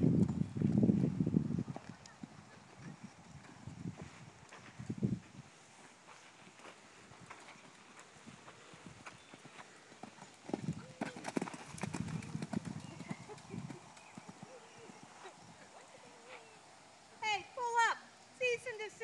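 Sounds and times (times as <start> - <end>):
horse hoofbeats on sand: 6.2 - 15.5.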